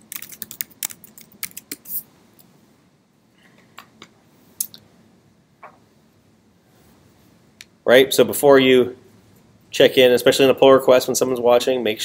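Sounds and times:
typing on computer keyboard: 0.0s - 1.9s.

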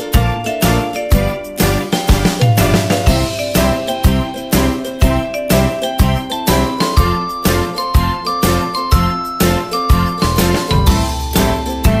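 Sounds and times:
children's tune with bell-like melody: 0.0s - 12.0s.

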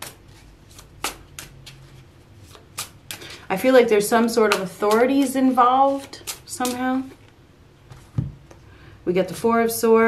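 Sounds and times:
cards being shuffled: 0.0s - 3.5s, 4.5s - 7.3s.

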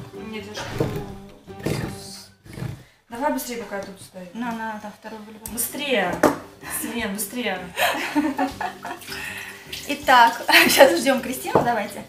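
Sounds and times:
liquid splashing into sink: 8.4s - 11.9s.

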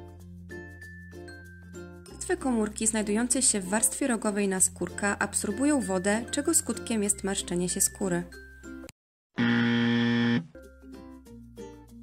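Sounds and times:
soft background music: 0.0s - 8.9s
wrong answer buzzer: 9.4s - 10.5s.

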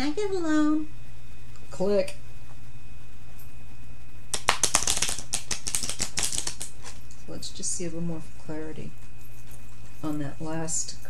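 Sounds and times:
cards being shuffled: 4.3s - 7.1s.

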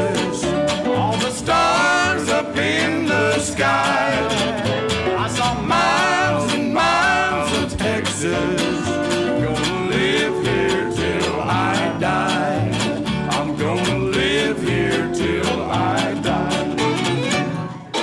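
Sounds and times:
man singing: 0.0s - 17.4s
electric guitars strumming: 0.0s - 18.0s
walking upright bass: 0.0s - 18.0s.

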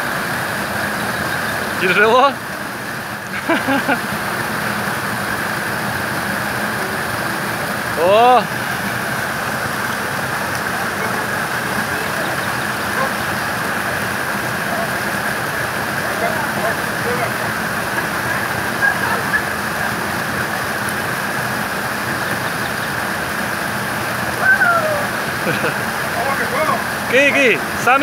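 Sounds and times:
flowing water rushing: 0.0s - 28.0s
faint voices: 6.7s - 20.8s, 24.3s - 28.0s.

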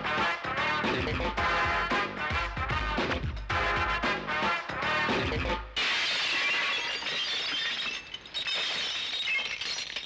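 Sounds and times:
glass shattering: 5.8s - 10.0s
glass shards tinkling: 6.3s - 10.0s.

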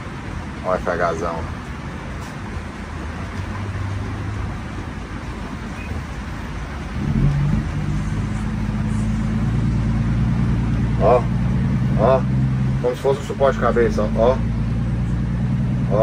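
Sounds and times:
truck engine from inside cab: 0.0s - 16.0s.

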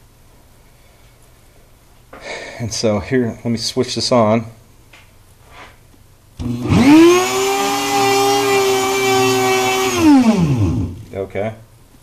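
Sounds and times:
rotary tool motor whining: 6.4s - 11.1s.

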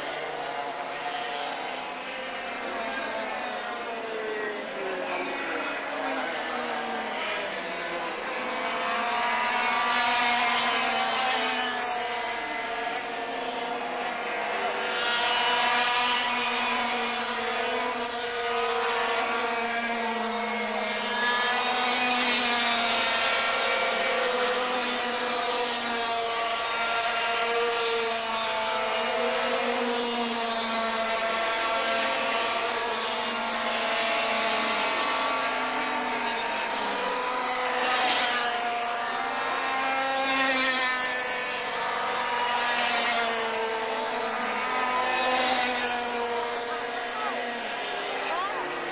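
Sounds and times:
racing kart engines: 0.0s - 48.9s.

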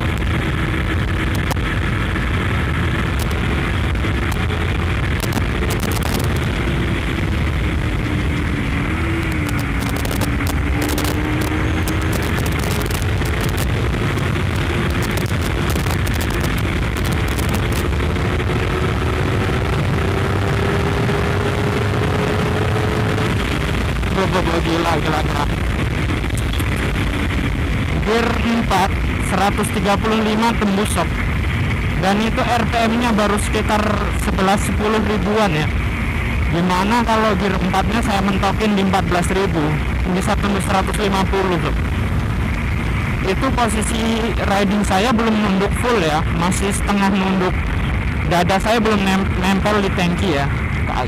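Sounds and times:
motorcycle engine at speed: 0.0s - 51.0s
wind rush on microphone: 0.0s - 51.0s.

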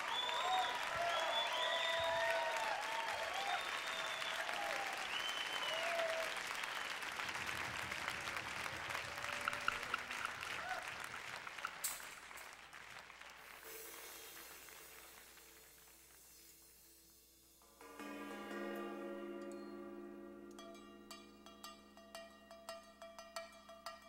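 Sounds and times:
audience cheering: 0.0s - 15.7s
audience applauding: 0.0s - 16.9s.

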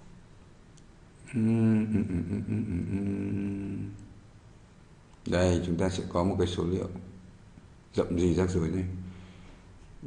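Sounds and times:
man humming low: 1.2s - 4.2s.

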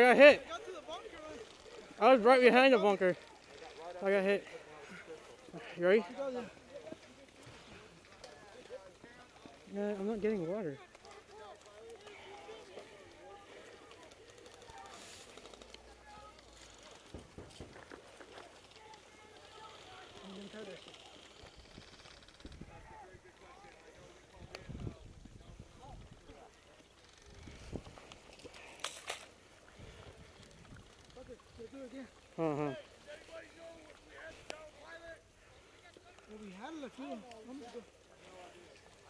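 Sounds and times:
distant people talking: 0.0s - 39.0s.

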